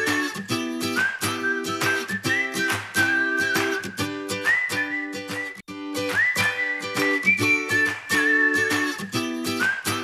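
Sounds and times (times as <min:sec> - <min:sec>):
plucked-string accompaniment: 0:00.0 - 0:10.0
whistled jingle tune: 0:00.0 - 0:10.0.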